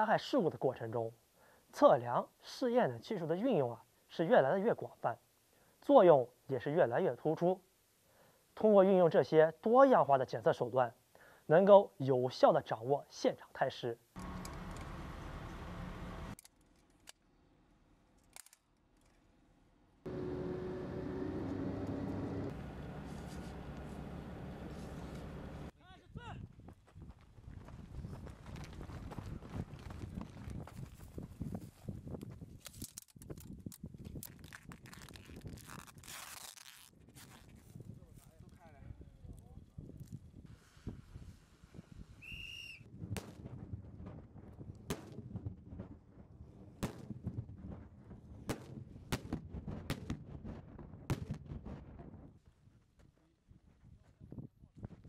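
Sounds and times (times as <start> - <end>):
outdoor background with low hum: 14.0 - 27.4
short whistle blast: 42.2 - 42.9.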